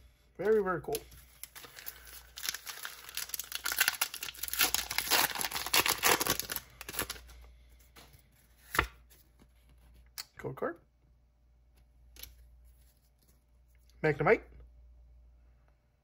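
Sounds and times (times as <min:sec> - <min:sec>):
foil wrapper tearing and crinkling: 0:01.3 - 0:07.3.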